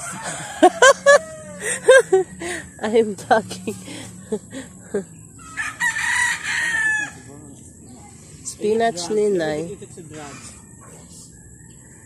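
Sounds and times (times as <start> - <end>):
rooster crowing: 0.0 - 2.2, 5.4 - 7.3.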